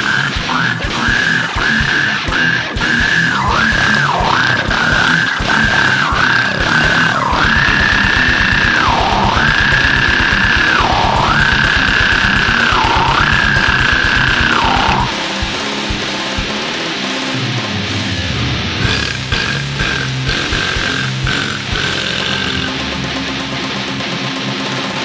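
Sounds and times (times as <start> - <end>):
high note dipping in pitch: 0.0 - 16.6
fast dense drumming: 0.0 - 16.9, 18.8 - 25.0
distorted metal music: 0.0 - 25.0.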